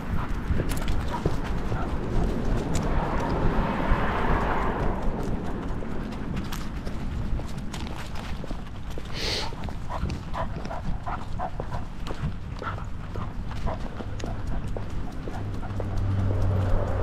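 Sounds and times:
clicks and knocks of dog steps: 0.0s - 3.4s, 5.1s - 17.0s
low rumble of movement: 0.0s - 17.0s.

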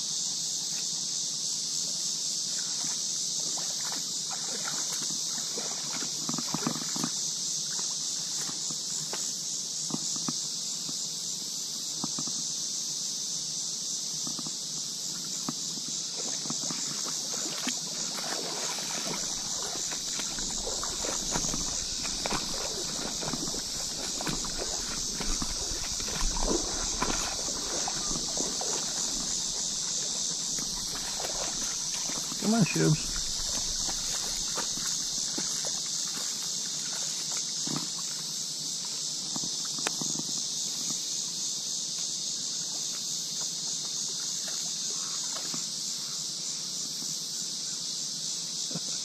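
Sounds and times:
high insect drone: 0.0s - 49.0s
footsteps in grass and mud: 16.5s - 38.0s.

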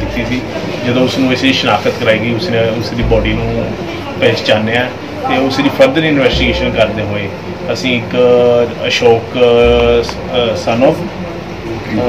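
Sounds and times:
man speaking: 0.0s - 11.2s
steady low hum: 0.0s - 12.0s.

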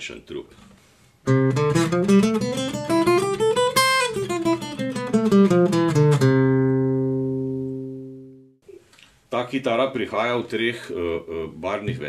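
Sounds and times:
fingerpicked acoustic guitar note: 1.3s - 8.5s.

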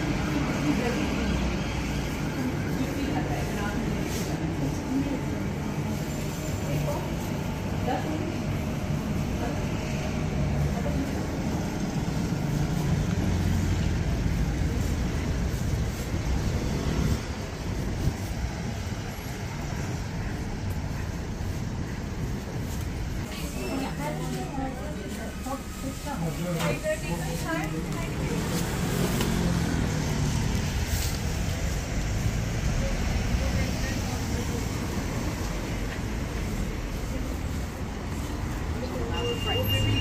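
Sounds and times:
road traffic rumble: 0.0s - 40.0s.

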